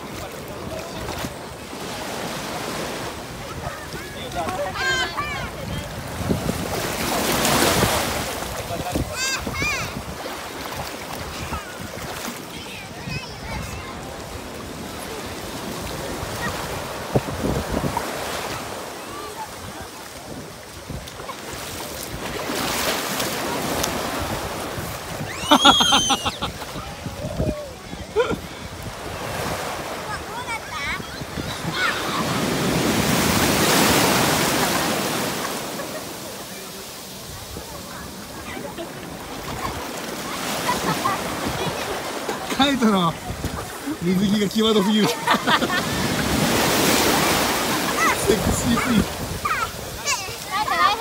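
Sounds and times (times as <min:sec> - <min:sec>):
wave breaking: 0:00.0 - 0:51.0
waves washing on beach: 0:00.0 - 0:51.0.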